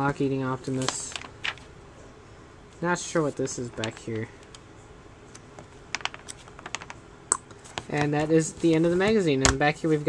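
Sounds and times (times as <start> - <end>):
magazine pages flipping: 0.7 - 1.7, 3.3 - 4.3, 5.9 - 7.0.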